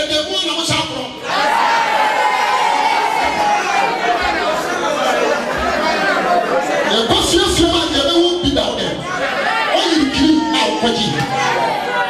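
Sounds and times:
crowd voices calling out: 1.1s - 12.0s.

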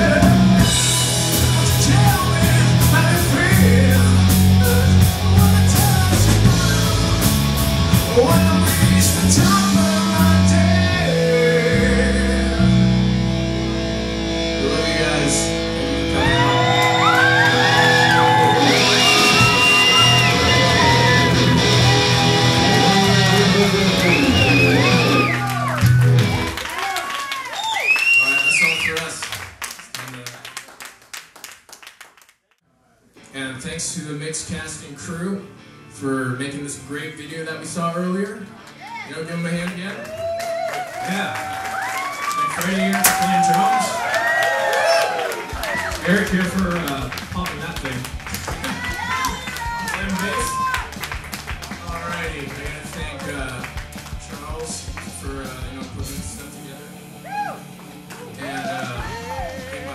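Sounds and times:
electric guitar notes and taps: 12.7s - 26.6s, 45.5s - 59.9s
audience clapping: 16.2s - 32.6s, 38.5s - 56.0s, 57.8s - 59.9s.

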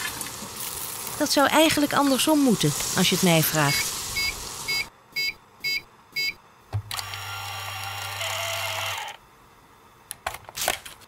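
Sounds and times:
printer motor whirring: 6.9s - 9.2s.

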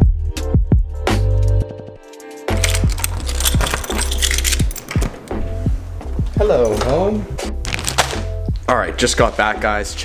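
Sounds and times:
loud music with deep bass: 0.0s - 1.8s
keys jangling: 2.0s - 5.3s.

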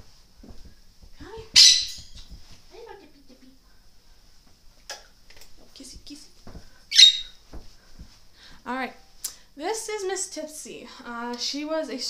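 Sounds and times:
parrot squawking harshly: 1.6s - 2.2s, 6.9s - 7.4s.

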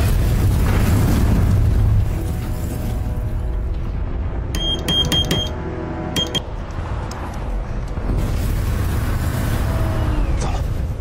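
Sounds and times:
morse code beeps: 4.6s - 5.6s, 6.2s - 6.4s.

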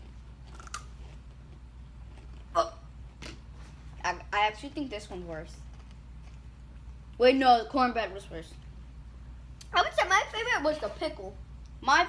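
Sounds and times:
potato chips being chewed: 0.0s - 3.6s.

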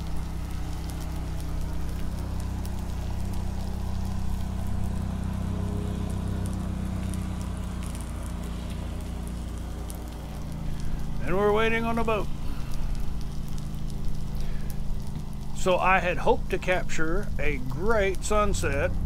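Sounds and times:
boat motor running: 0.0s - 19.0s.

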